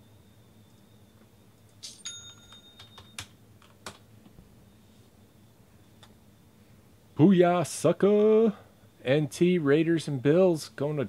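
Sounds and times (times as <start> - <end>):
high metallic ring: 1.8 - 3.2.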